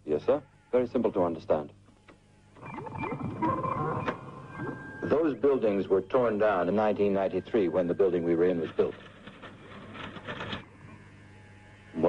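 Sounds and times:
low electrical hum: 0.0s - 12.0s
scratchy rustle: 8.4s - 10.7s.

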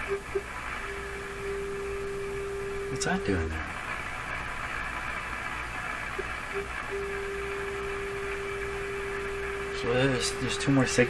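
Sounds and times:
radio static hiss and hum: 0.0s - 11.0s
steady test tone: 6.5s - 11.0s.

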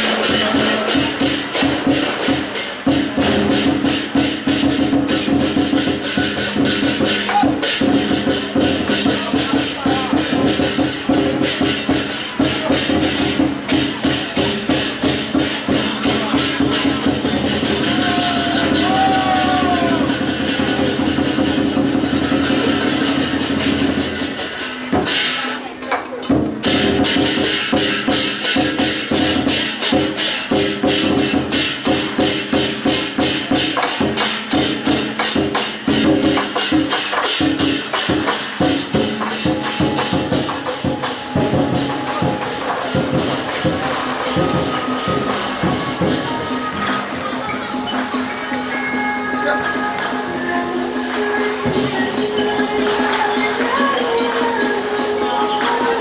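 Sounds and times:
fast continuous percussion: 0.0s - 56.0s.

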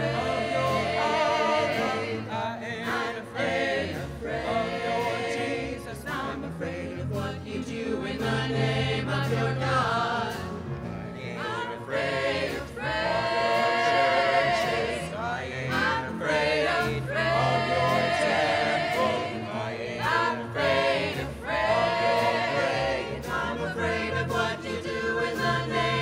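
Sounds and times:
grand piano: 0.0s - 26.0s
voices singing in harmony: 0.0s - 26.0s.

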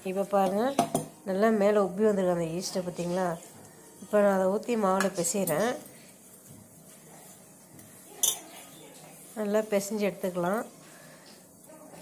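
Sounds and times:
bangles clinking on steel bowl: 8.2s - 8.5s.

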